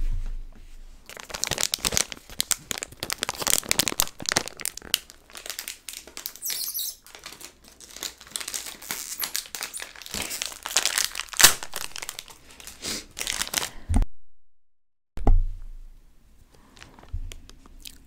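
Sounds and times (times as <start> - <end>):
plastic snack packet crinkling: 1.1 - 13.8.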